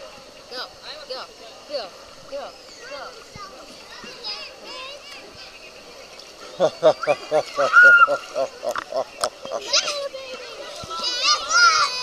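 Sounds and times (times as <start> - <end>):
distant children's voices: 0.0 - 12.0
child squealing: 7.6 - 8.2.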